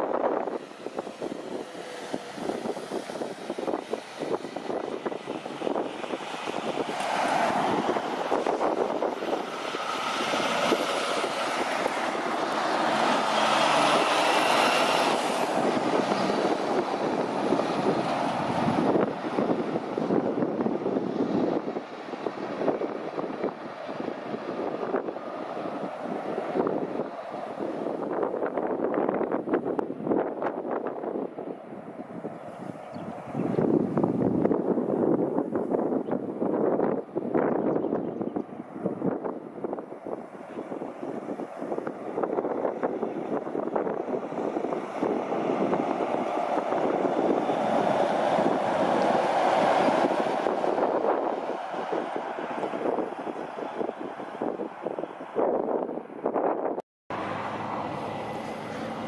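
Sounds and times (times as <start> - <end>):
truck diesel engine passing: 0.0 - 37.5, 38.4 - 56.4, 57.1 - 59.0.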